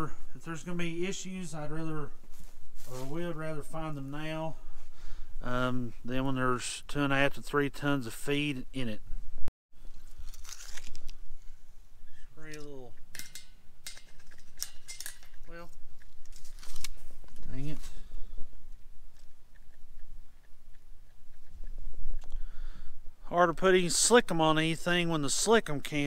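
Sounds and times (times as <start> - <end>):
light metallic rattles: 12.4 - 17.6
clicks and knocks on metal: 12.6 - 15.5.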